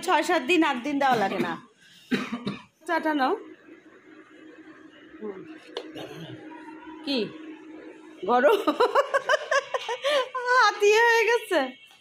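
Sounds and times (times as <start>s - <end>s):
person coughing: 1.1s - 2.7s, 5.8s - 6.4s.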